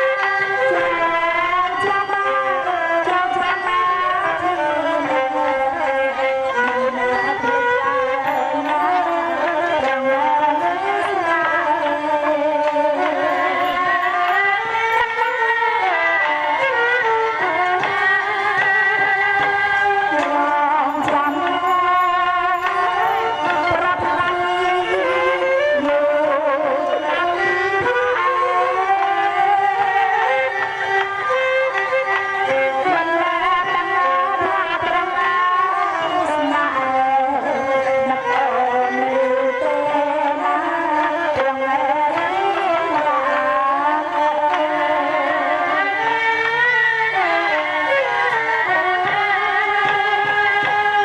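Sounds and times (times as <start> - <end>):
instrumental accompaniment: 0.0 - 51.0
woman singing into a microphone: 0.0 - 51.0.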